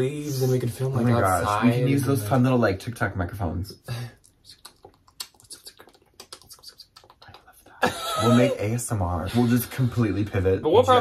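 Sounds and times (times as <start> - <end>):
mouth clicks and lip smacks: 4.2 - 7.8.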